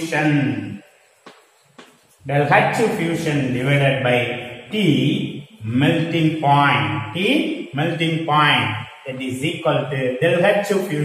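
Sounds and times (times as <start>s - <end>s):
man talking: 0.0s - 0.8s, 2.2s - 11.0s.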